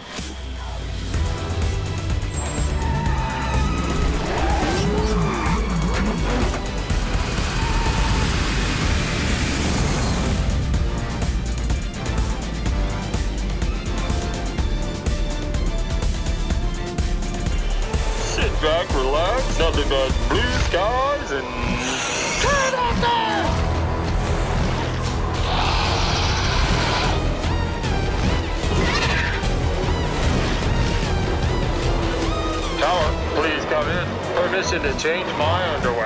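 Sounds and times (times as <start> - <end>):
action soundtrack music: 0.0 - 36.0.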